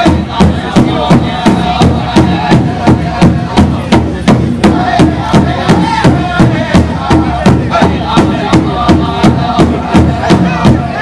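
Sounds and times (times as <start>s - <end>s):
powwow drum beating: 0.0s - 11.0s
singers' high voices: 0.0s - 11.0s.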